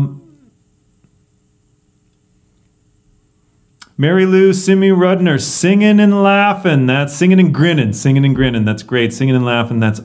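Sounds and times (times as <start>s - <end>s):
faint steady hum: 0.0s - 10.0s
man's voice: 3.8s - 10.0s.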